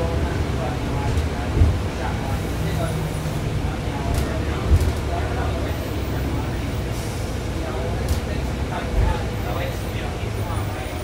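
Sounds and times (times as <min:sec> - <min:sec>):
bus diesel engine rumble: 0:00.0 - 0:11.0
road noise: 0:00.0 - 0:11.0.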